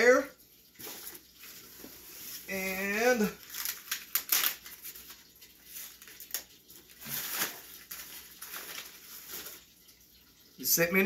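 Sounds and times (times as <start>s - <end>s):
paper wrap rustling and crinkling: 0.8s - 10.0s.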